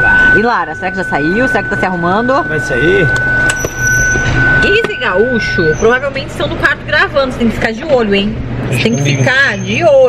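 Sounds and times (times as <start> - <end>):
high-pitched thin tone: 0.0 - 6.2
low steady hum: 0.0 - 10.0.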